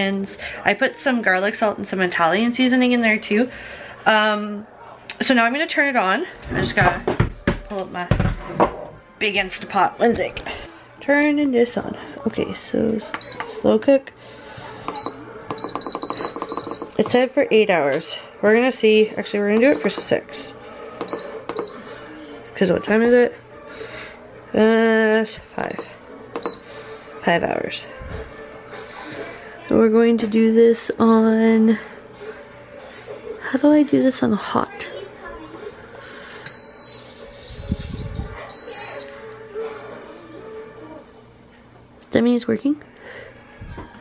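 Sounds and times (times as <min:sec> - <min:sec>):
high-pitched electronic beeps: 0:36.5 - 0:39.1.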